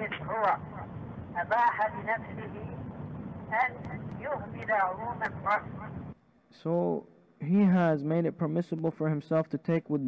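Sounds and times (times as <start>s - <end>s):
low background hum: 0.0s - 10.0s
man speaking: 6.5s - 10.0s.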